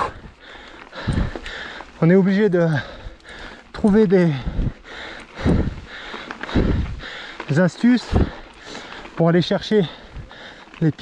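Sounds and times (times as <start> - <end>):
bike tyres on gravel: 0.0 - 11.0.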